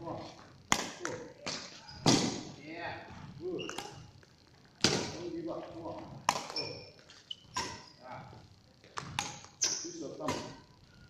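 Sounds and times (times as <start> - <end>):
badminton rackets hitting shuttlecock: 0.7 - 2.4, 6.2 - 7.9, 8.9 - 10.6.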